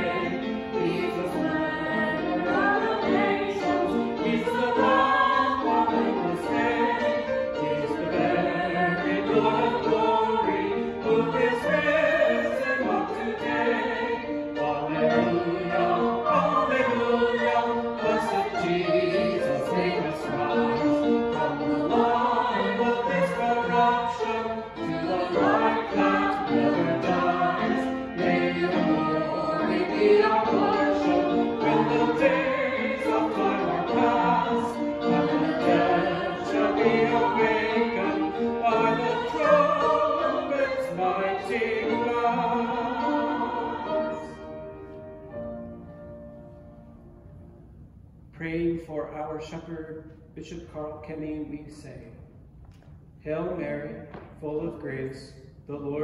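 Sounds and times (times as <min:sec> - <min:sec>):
choir singing in harmony: 0:00.0 - 0:47.4.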